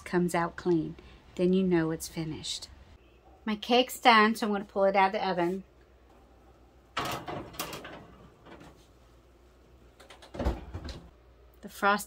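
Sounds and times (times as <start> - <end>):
oven door opening: 7.0 - 8.9, 10.1 - 11.1.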